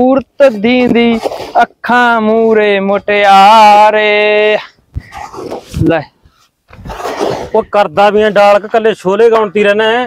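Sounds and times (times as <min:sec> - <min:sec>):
faint scraping in soil: 0:00.4 - 0:02.8, 0:05.0 - 0:09.0.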